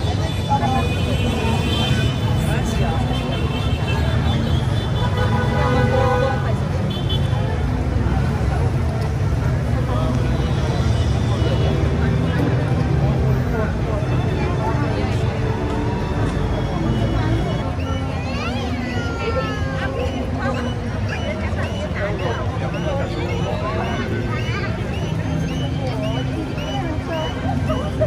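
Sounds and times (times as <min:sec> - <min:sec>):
passing traffic rumble: 0:00.0 - 0:28.0
people talking nearby: 0:00.0 - 0:28.0.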